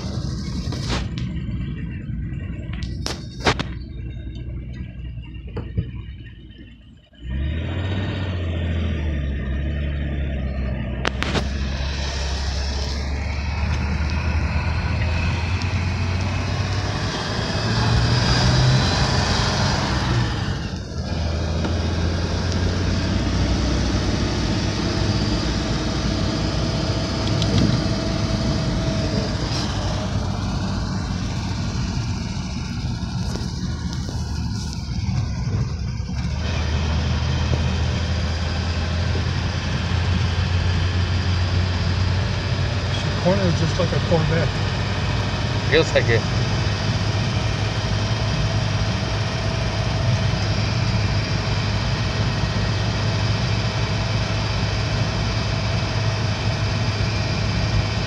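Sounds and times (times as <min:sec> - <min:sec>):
car engine drone from cabin: 0:00.0 - 0:58.0.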